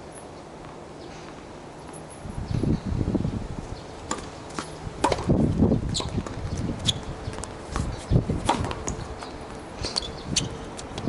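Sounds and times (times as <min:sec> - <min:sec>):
tennis ball strikes and bounces: 0:04.1 - 0:11.0.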